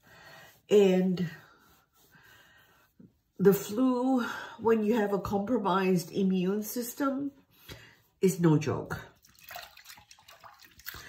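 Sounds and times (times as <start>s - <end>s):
water drips and splashes: 9.1s - 11.0s
water trickling in sink: 9.1s - 11.0s.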